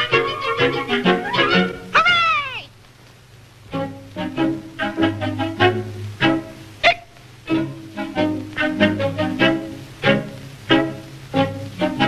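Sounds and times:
cartoon orchestral music with fiddle: 0.0s - 1.9s, 3.7s - 6.7s, 7.5s - 12.0s
cat meowing: 1.2s - 2.7s.

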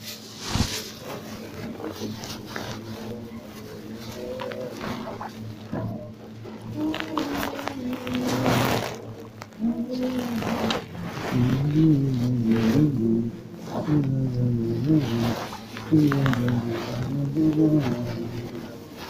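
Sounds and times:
men chanting liturgy: 1.0s - 19.0s.

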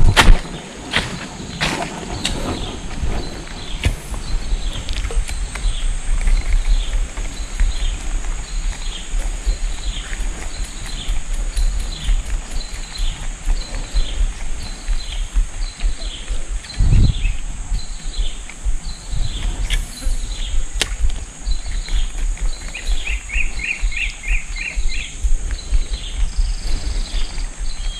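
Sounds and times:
wind rumble on microphone: 0.0s - 27.9s
steady high buzz: 2.3s - 27.9s.

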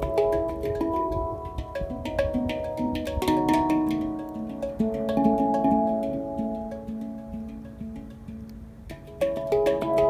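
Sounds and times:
handpans played by hand: 0.0s - 10.0s.

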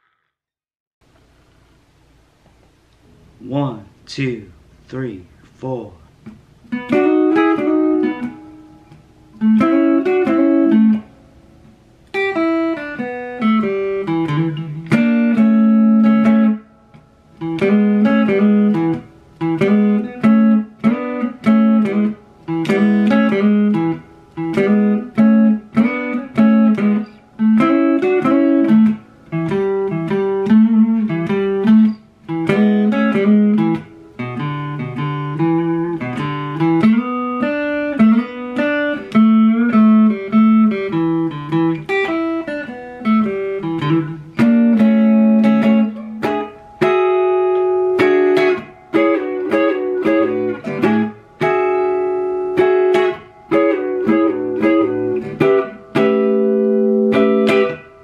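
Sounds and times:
electric guitar blues riff: 6.2s - 58.0s.

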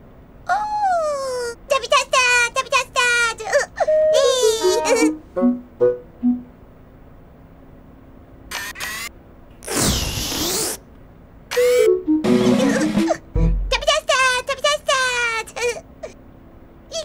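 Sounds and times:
loud burst of noise: 8.5s - 10.8s.

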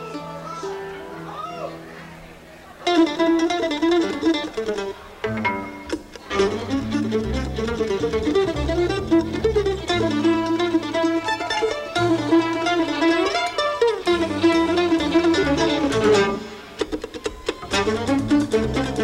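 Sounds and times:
mandolin melody: 0.0s - 19.0s
bass line: 6.3s - 11.0s, 14.1s - 16.4s, 17.6s - 19.0s
drums: 15.9s - 19.0s.

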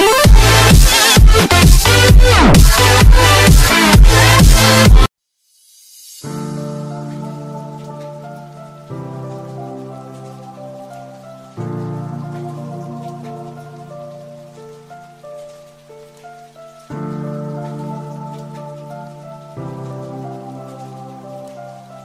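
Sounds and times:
faint rain-like hiss: 4.2s - 22.0s
slow held notes: 6.5s - 15.5s.

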